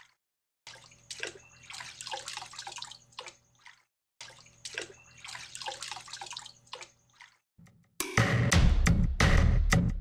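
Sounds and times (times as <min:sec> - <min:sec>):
water sloshing and bubbling: 0:00.0 - 0:07.5.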